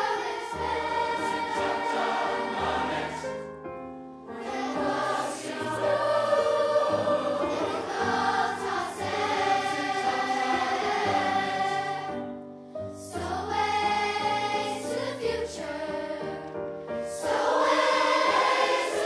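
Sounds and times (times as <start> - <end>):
children's choir singing: 0.0 - 3.5, 4.3 - 12.4, 13.0 - 19.0.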